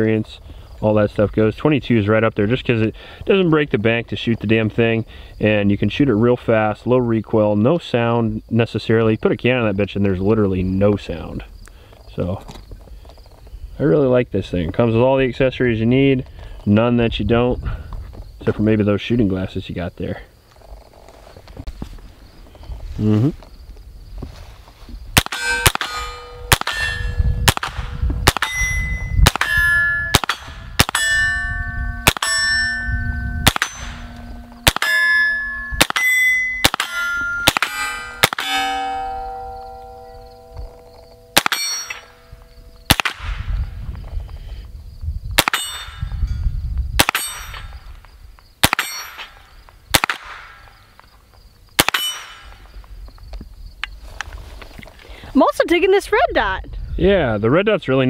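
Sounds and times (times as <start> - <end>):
pistol shots: 25.2 - 31.4, 32.0 - 32.6, 33.4 - 39.4, 41.3 - 42.1, 42.9 - 43.4, 45.4 - 46.0, 47.0 - 47.6, 48.6 - 49.2, 49.9 - 50.6, 51.8 - 52.6
steel targets ringing: 25.2 - 43.1, 45.4 - 46.4, 47.0 - 47.9, 48.6 - 49.4, 51.8 - 52.6.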